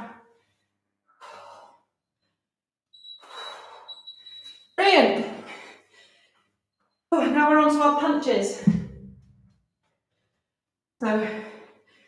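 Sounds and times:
woman breathing hard: 3.2s - 4.4s.

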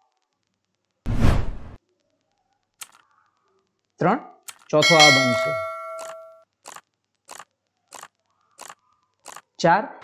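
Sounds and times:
faint clicks: 1.8s - 4.8s
bell-like notification ding: 4.8s - 6.4s.

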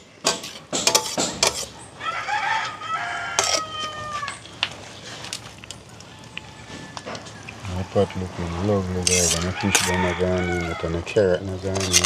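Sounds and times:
ladle clinking against pot: 0.2s - 1.8s, 3.4s - 3.7s, 9.0s - 10.1s
rooster crowing: 2.0s - 4.5s, 5.8s - 11.4s.

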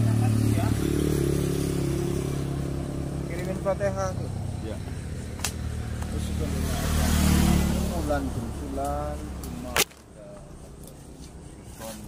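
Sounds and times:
vehicle passing: 0.0s - 12.0s.

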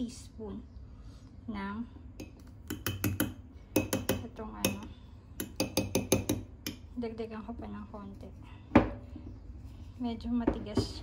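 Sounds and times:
metal spoon clinking against mug: 2.2s - 6.8s.

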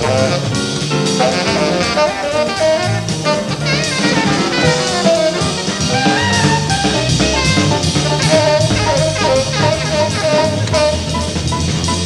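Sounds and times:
drum kit: 0.0s - 12.0s
tenor saxophone solo: 0.0s - 12.0s.

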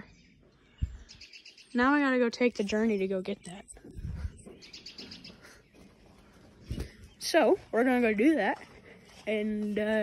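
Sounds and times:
faint bird chirping: 0.0s - 10.0s.

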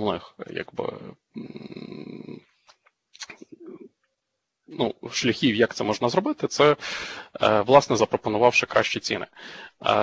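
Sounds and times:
soft mumbled syllables: 0.4s - 2.4s, 3.2s - 3.9s.

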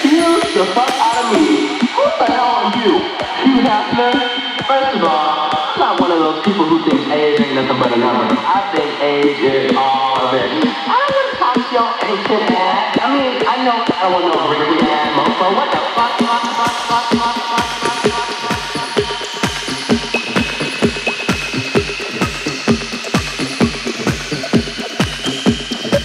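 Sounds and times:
house music with vocals: 0.0s - 26.0s.

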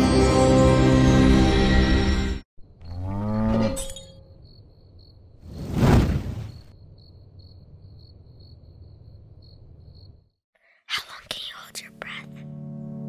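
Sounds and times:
cricket-like chirping: 3.8s - 10.4s
sustained low music chord: 11.6s - 13.0s.

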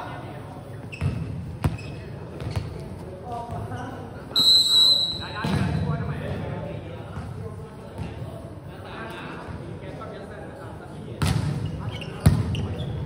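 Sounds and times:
volleyball bouncing on court floor: 1.0s - 3.7s, 11.2s - 11.6s, 12.2s - 12.7s
referee's whistle: 4.3s - 5.4s.

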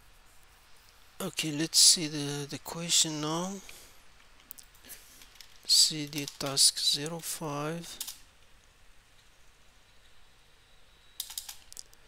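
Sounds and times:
faint room noise: 0.0s - 12.0s
computer keyboard keystrokes: 11.2s - 11.7s.

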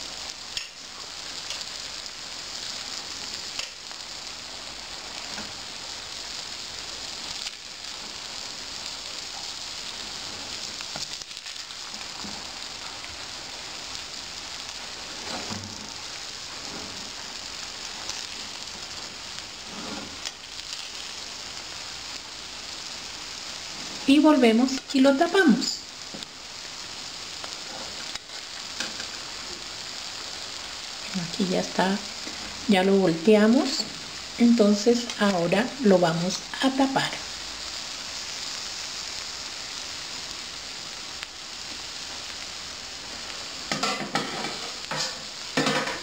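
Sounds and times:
rice sizzling in a metal pan: 0.0s - 46.0s
skimmer scraping a pan: 19.6s - 20.3s.

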